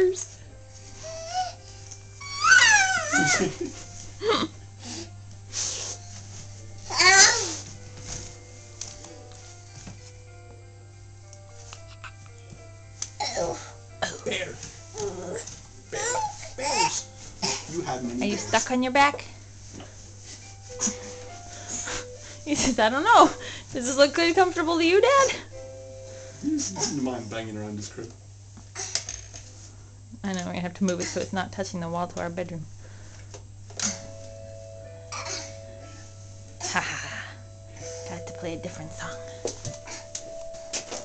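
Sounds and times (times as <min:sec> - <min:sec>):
quiet music of held notes: 0:00.0 - 0:41.0
steady low hum: 0:03.0 - 0:41.0.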